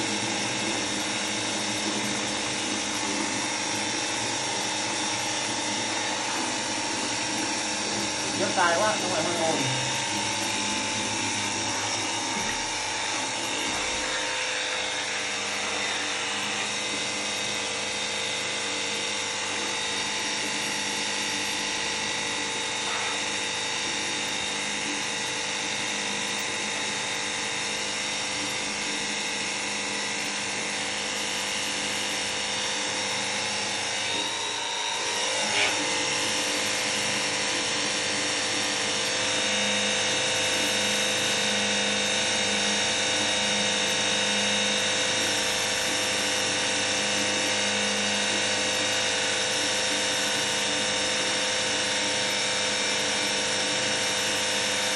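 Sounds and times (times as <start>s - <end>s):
pressure washer motor whine: 0.0s - 54.9s.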